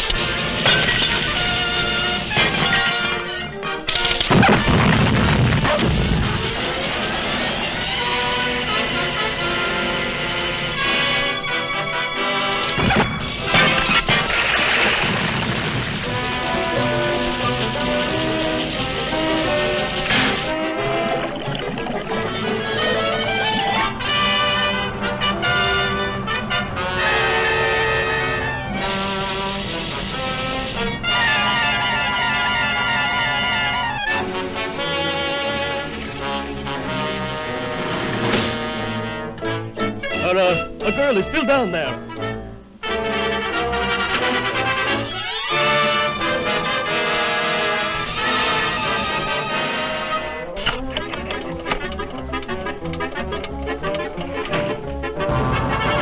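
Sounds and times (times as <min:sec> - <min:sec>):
orchestral cartoon music with brass: 0:00.0 - 0:56.0
sharp orchestral hit: 0:55.2 - 0:56.0.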